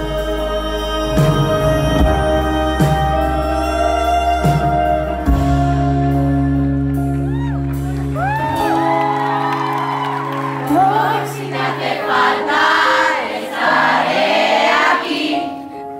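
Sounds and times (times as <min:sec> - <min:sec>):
live concert music: 0:00.0 - 0:15.9
crowd cheering and screaming: 0:07.0 - 0:13.1.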